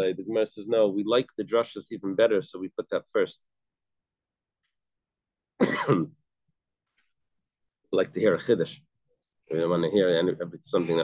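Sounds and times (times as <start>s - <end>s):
man clearing throat: 5.6s - 6.2s.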